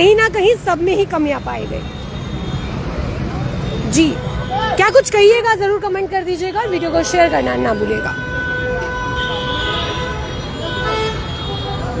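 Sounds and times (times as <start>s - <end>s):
road traffic rumbling: 0.0s - 12.0s
vehicle horn: 6.5s - 12.0s.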